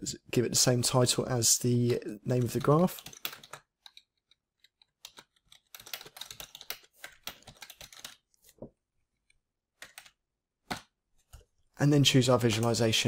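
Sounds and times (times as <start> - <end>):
computer keyboard typing: 2.2 - 8.4, 9.8 - 10.8.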